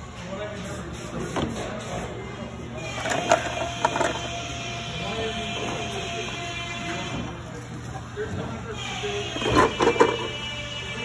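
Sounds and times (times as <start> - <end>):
factory hum: 0.0 - 11.0.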